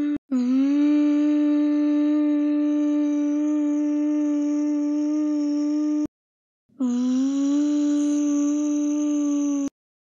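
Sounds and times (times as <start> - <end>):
person humming a steady note: 0.0 - 6.1, 6.8 - 9.7.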